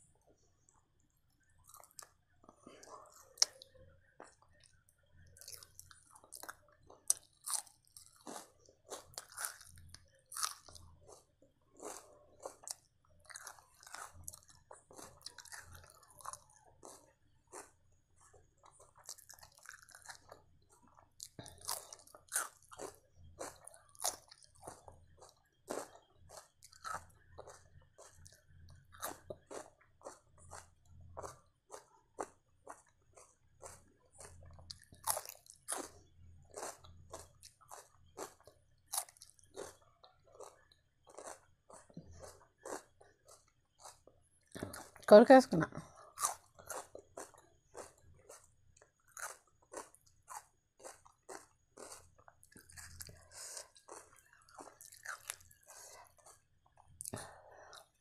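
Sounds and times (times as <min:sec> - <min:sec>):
close chewing mouth clicks: 0:18.6 - 0:45.0, 0:46.0 - 0:58.0.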